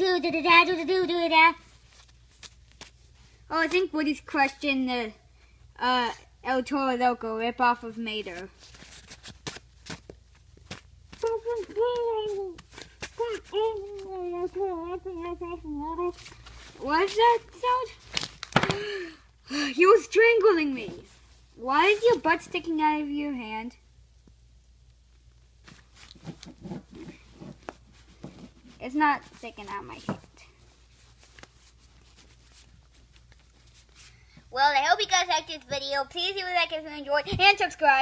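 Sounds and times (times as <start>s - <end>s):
child making wordless sounds: 0.0s - 1.7s, 11.2s - 18.0s, 18.9s - 23.8s, 28.8s - 30.5s, 34.5s - 38.0s.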